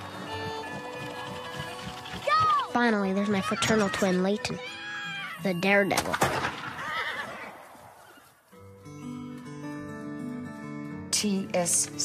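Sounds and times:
rifle shot: 6.0 - 7.7
horse whinnying: 6.6 - 8.3.

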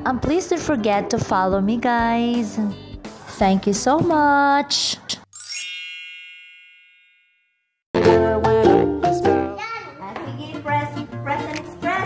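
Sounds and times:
bright bell ding: 5.4 - 7.6.

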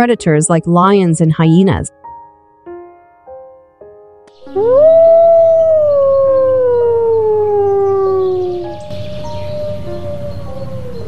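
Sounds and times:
wolf howling: 4.4 - 11.0.

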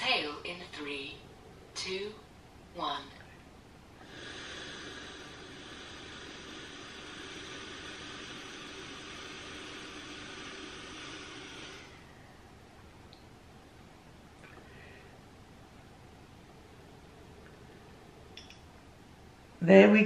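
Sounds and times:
long steady exhale hissing: 4.0 - 12.7, 14.5 - 15.4.

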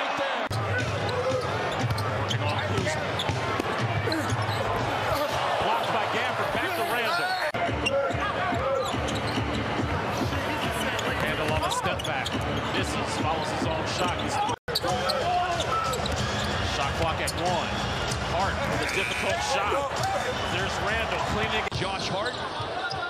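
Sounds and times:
crowd noise: 0.0 - 23.0.

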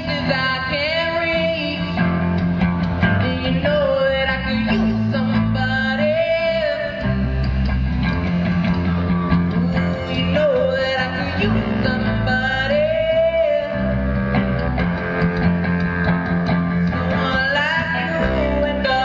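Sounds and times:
young man singing: 0.0 - 2.0, 3.1 - 7.6, 9.4 - 14.2, 16.8 - 19.0
bass guitar: 0.0 - 19.0
drums: 0.0 - 19.0
electric guitar: 0.0 - 19.0.

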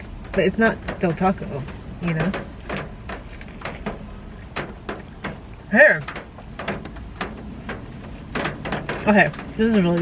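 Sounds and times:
crunchy food being chewed: 2.7 - 5.7.

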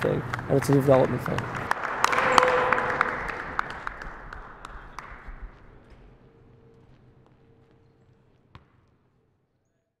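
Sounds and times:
basketball bouncing: 8.5 - 8.9.

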